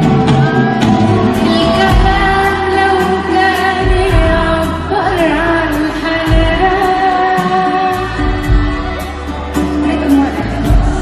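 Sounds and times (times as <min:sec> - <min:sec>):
drums and cymbals beat: 0:00.0 - 0:11.0
woman singing pop song: 0:01.3 - 0:11.0.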